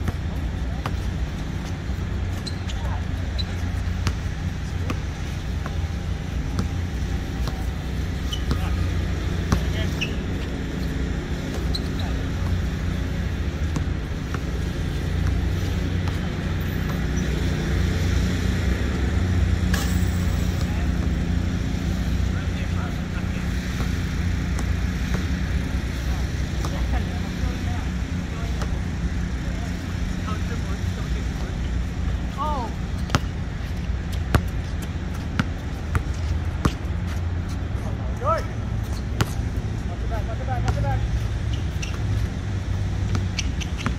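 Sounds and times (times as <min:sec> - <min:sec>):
basketball bouncing on court: 0:00.0 - 0:17.6, 0:23.7 - 0:25.4, 0:33.0 - 0:37.5, 0:38.9 - 0:39.5, 0:41.6 - 0:43.9
distant traffic rumble: 0:00.0 - 0:43.9
short squeaks: 0:02.3 - 0:03.8, 0:08.2 - 0:08.8, 0:09.9 - 0:10.9, 0:11.6 - 0:12.3, 0:41.4 - 0:42.2, 0:43.2 - 0:43.9.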